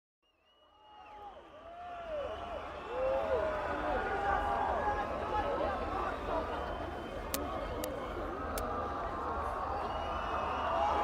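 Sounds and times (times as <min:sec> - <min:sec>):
crowd shouting and whooping: 0:00.7 - 0:11.0.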